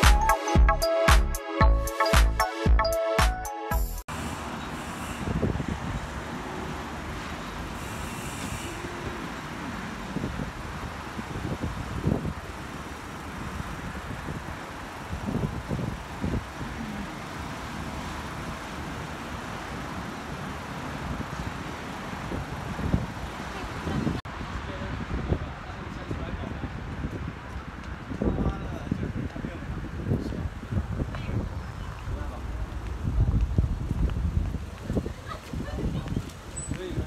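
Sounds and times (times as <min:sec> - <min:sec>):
city road traffic hum: 0:04.0 - 0:37.0.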